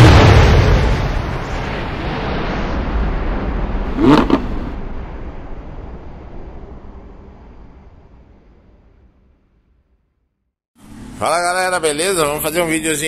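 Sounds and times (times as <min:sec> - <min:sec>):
rumbling noise: 0:00.1 - 0:09.2.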